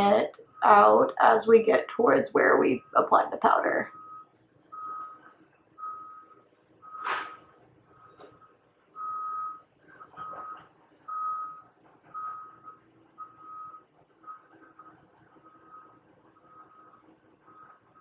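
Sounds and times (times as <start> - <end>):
reversing alarm beeping: 0.0 - 18.0.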